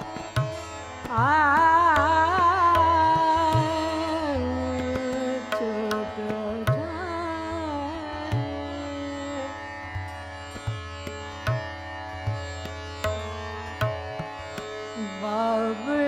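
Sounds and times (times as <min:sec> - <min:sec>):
slow tabla beat: 0:00.0 - 0:08.7, 0:09.9 - 0:15.2
tanpura drone: 0:00.0 - 0:16.0
woman singing: 0:01.1 - 0:09.6, 0:15.0 - 0:16.0.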